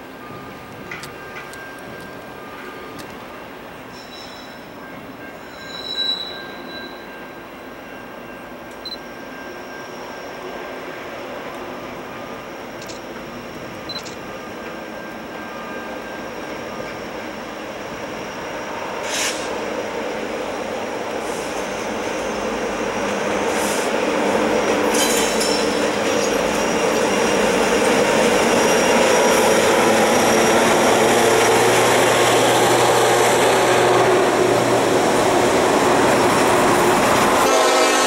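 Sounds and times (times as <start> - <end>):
freight train approaching: 0.0 - 38.0
high-pitched wheel squeal: 5.4 - 7.1.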